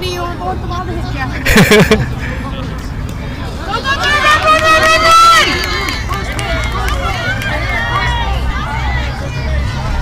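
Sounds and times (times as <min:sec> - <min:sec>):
crowd chatter and calls: 0:00.0 - 0:10.0
crowd yelling and cheering: 0:03.3 - 0:10.0
loud drawn-out shout: 0:03.7 - 0:10.0.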